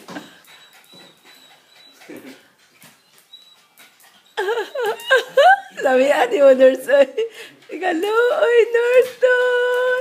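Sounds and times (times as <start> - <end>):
dog whining: 0.0 - 5.5.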